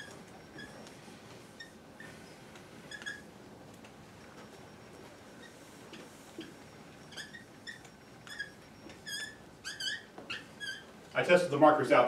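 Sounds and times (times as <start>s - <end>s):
marker squeaking on whiteboard: 0.0s - 3.4s, 5.2s - 11.0s.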